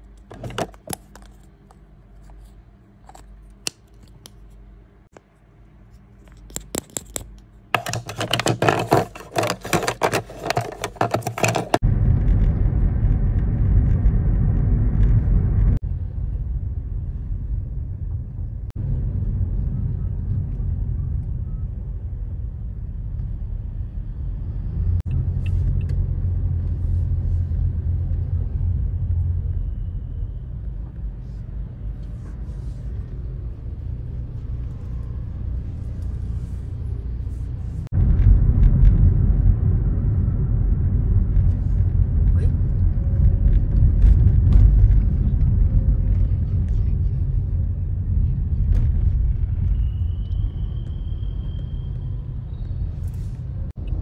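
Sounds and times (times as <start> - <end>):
loud rattling and scraping: 6.4 - 11.8
car interior rumble: 11.2 - 54.0.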